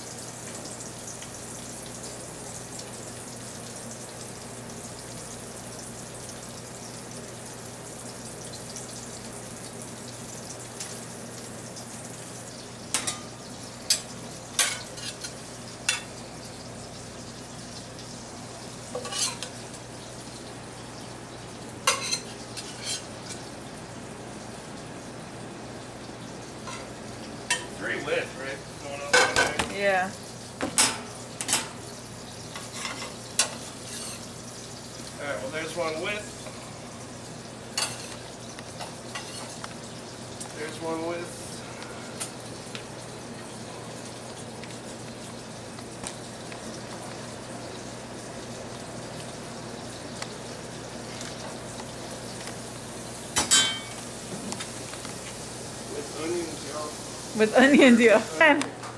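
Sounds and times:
food sizzling in pans: 0:00.0 - 0:58.6
metal utensil clinking on pan: 0:53.4 - 0:54.0.

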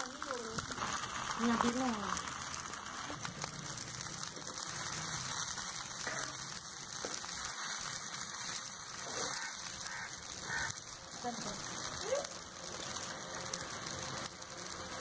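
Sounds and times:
fish sizzling in oil: 0:00.0 - 0:15.0.

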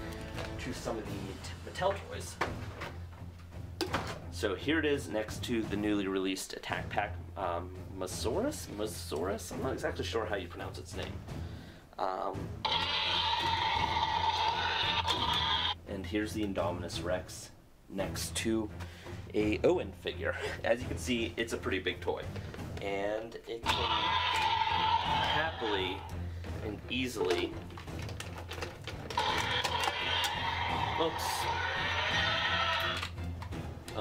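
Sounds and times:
electronic toy dinosaur roar: 0:12.6 - 0:15.8, 0:23.7 - 0:26.1, 0:29.1 - 0:33.1.

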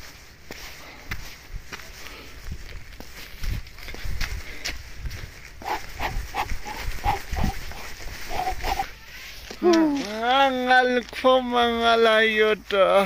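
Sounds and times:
footsteps on dirt path: 0:00.0 - 0:13.0
short clipped calls: 0:05.6 - 0:09.3.

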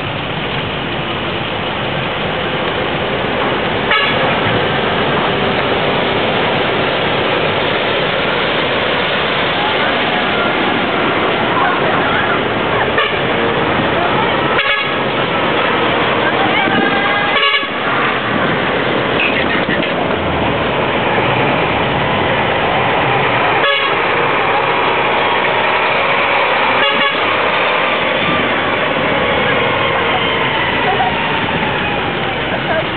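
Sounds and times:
truck engine running: 0:00.0 - 0:32.9
truck horn sounding: 0:03.9 - 0:04.4, 0:12.8 - 0:13.6, 0:14.4 - 0:15.9, 0:16.7 - 0:18.4, 0:23.6 - 0:24.2, 0:26.7 - 0:27.6
chatter of onlookers: 0:09.4 - 0:20.2, 0:22.5 - 0:32.9.

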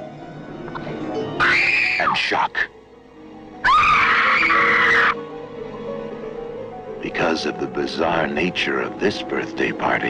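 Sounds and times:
horror film score music: 0:00.0 - 0:10.0
woman screaming: 0:01.4 - 0:02.2, 0:03.6 - 0:05.2.

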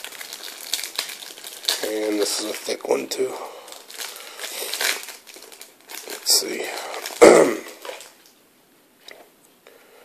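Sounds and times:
plastic wrapper crinkling: 0:00.0 - 0:08.4.

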